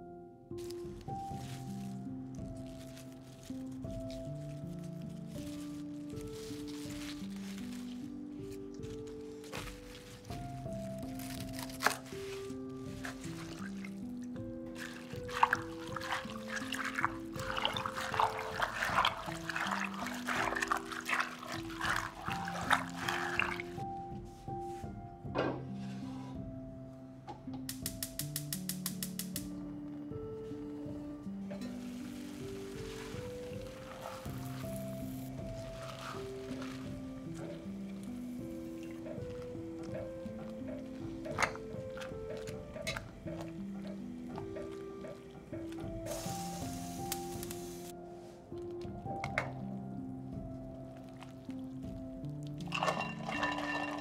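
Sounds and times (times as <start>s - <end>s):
gentle background music: 0.0s - 54.0s
hands splashing water in a bowl: 11.2s - 23.8s, 31.6s - 47.6s, 52.4s - 54.0s.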